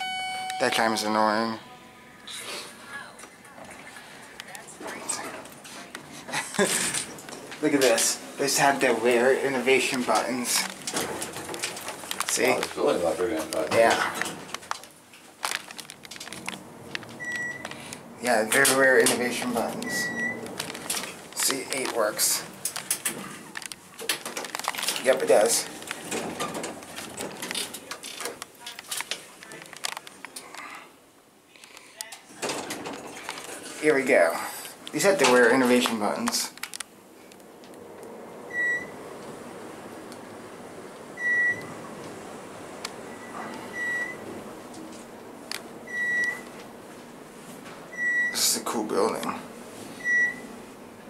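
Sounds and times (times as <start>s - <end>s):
short electronic beep: 0.0s - 1.8s, 19.8s - 20.4s
elevator car running: 6.3s - 14.8s, 15.8s - 28.4s, 32.4s - 33.8s, 37.0s - 51.0s.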